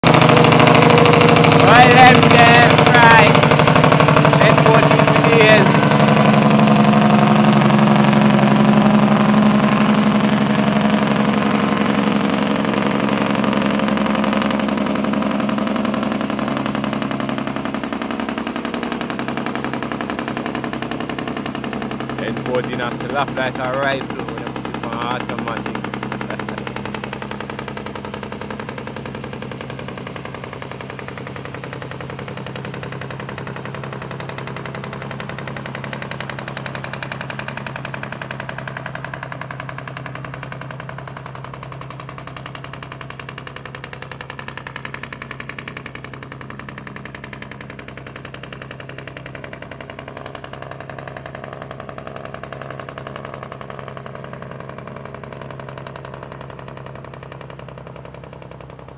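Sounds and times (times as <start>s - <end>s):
dump truck diesel engine running: 0.0s - 58.9s.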